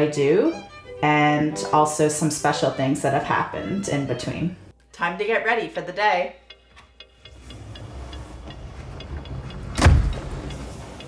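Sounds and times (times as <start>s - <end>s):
faint ticking: 6.4s - 11.0s.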